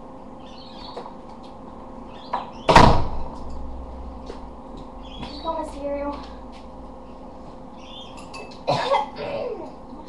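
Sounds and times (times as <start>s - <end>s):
door shutting with a bang: 2.6s - 3.3s.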